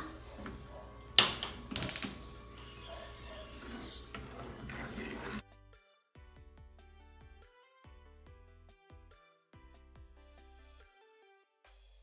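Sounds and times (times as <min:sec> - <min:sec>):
spark igniter ticking: 0:01.2 - 0:02.3
background music: 0:04.9 - 0:12.0.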